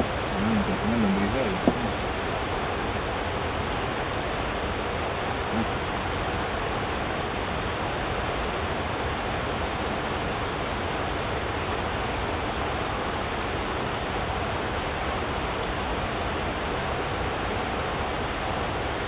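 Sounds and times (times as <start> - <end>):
steady rushing noise: 0.0 - 19.0.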